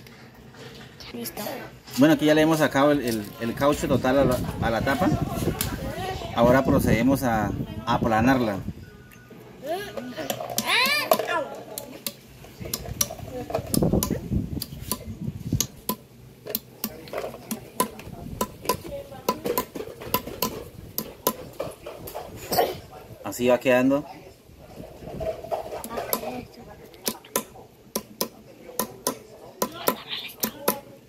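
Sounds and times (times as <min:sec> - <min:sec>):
hatchet tapping metal bottle cap: 0:12.0 - 0:21.4, 0:27.0 - 0:30.8.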